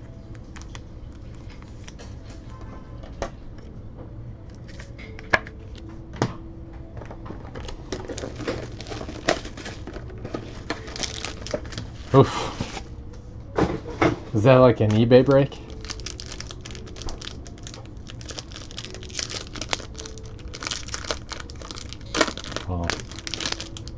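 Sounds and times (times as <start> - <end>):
card pack wrapper crinkling: 0.3 - 2.0, 7.6 - 12.8, 15.6 - 23.9
wrapper tearing open: 0.3 - 2.0, 7.6 - 12.8, 15.7 - 23.9.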